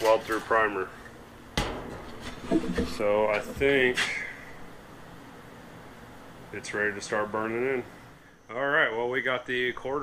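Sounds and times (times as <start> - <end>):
man speaking: 0.0 - 1.0, 2.8 - 4.4, 6.5 - 7.9, 8.5 - 10.0.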